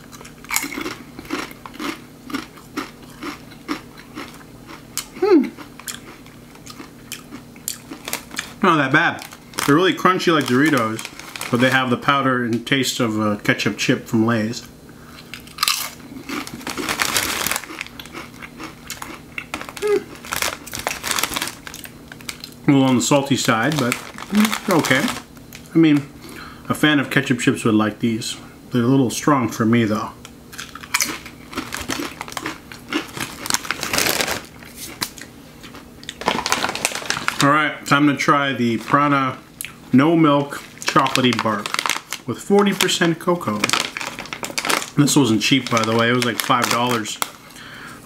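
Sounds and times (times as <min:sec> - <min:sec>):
person crunching a tortilla chip: 0:00.0 - 0:08.6, 0:15.2 - 0:22.6, 0:23.5 - 0:25.3, 0:30.5 - 0:37.4, 0:40.6 - 0:47.4
crisp chewing: 0:00.0 - 0:12.0, 0:15.2 - 0:25.7, 0:30.5 - 0:37.5, 0:40.5 - 0:47.5.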